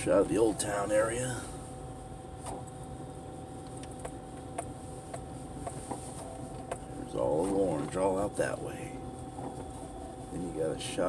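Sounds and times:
car engine and road hum: 0.0 - 11.0
faint whine: 0.0 - 11.0.

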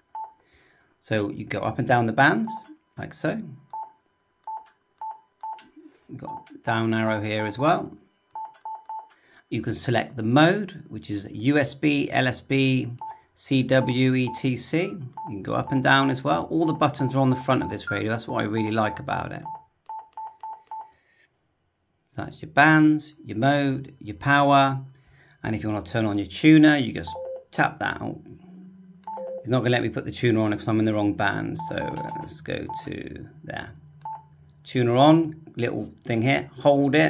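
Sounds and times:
radio key beeps: 16.7 - 20.9, 31.6 - 33.0.

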